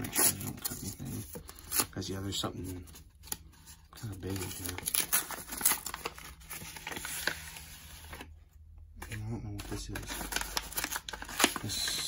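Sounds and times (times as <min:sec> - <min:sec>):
paper envelope tearing: 0:00.0 - 0:02.2, 0:04.0 - 0:08.3, 0:09.1 - 0:12.0.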